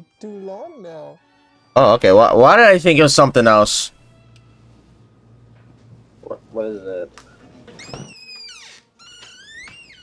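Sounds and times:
door hinges creaking: 7.6 - 10.0.

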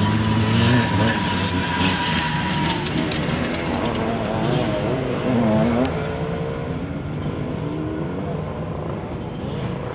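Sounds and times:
motorcycle engines revving: 0.0 - 9.9.

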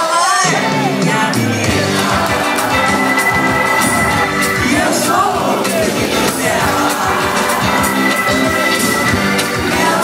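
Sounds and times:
live rock band playing: 0.1 - 10.0
high held note: 2.6 - 5.6.

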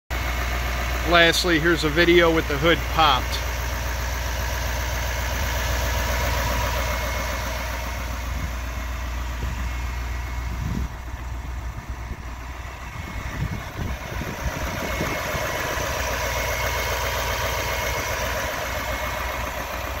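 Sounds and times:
diesel engine idling: 0.1 - 20.0.

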